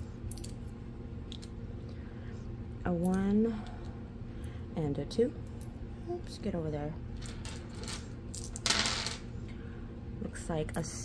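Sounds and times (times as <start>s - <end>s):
dice clattering on tabletop: 7.4s - 9.2s.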